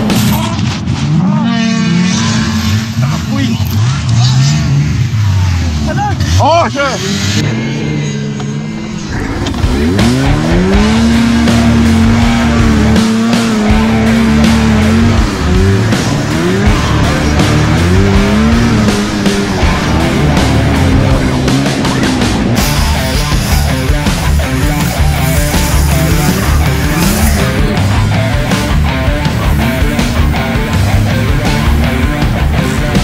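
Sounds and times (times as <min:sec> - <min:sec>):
snowmobile engine revving: 0:00.0 - 0:33.0.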